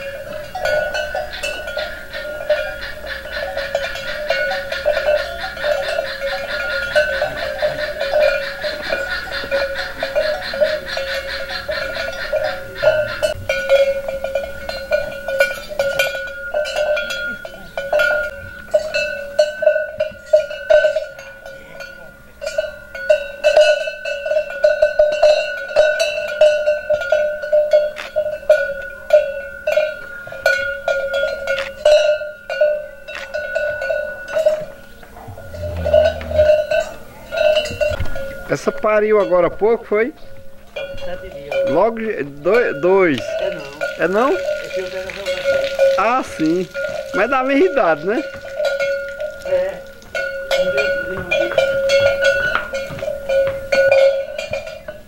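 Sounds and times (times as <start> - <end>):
cattle bell clanking: 0.0 - 55.0.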